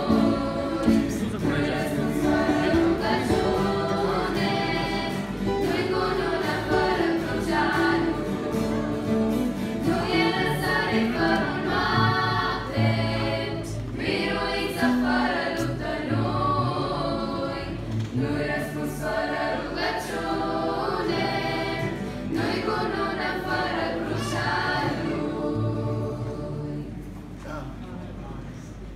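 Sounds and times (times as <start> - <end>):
girls singing a religious song: 0.0 - 27.0.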